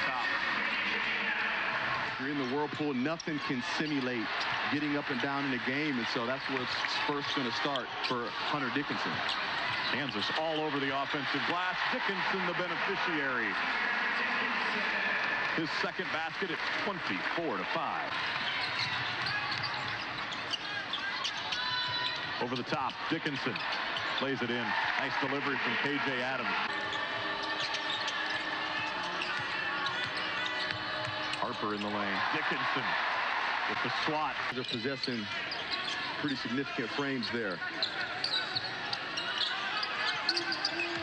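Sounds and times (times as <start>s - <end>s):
arena crowd noise: 0.0s - 41.0s
sneaker squeaks: 9.1s - 10.2s, 18.3s - 23.0s, 26.6s - 32.0s, 34.6s - 41.0s.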